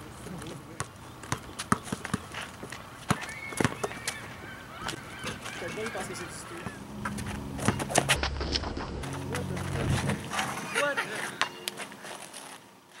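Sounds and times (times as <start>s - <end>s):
basketball bouncing on asphalt: 0.7s - 6.0s
geese honking: 3.2s - 8.4s
players' voices: 4.3s - 8.3s, 9.0s - 11.5s.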